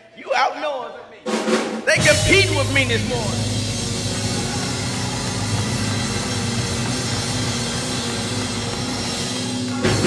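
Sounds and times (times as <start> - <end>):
church band music: 1.2 - 10.0
drum kit playing: 1.3 - 10.0.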